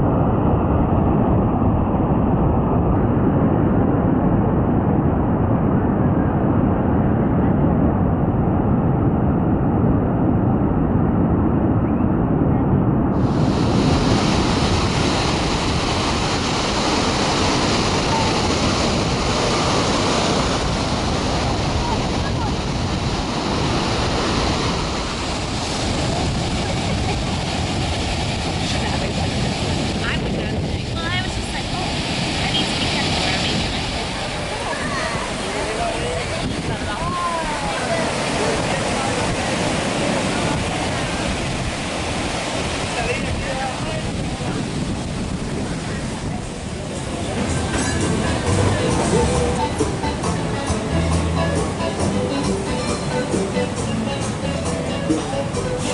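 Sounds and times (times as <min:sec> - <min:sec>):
wind buffeting microphone: 0:00.0 - 0:55.9
surf breaking on beach: 0:12.6 - 0:55.9.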